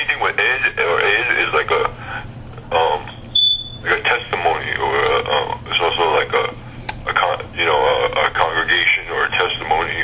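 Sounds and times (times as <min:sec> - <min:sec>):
person speaking: 0:00.0 - 0:03.2, 0:03.8 - 0:10.0
short high-pitched electronic beep: 0:03.4 - 0:03.8.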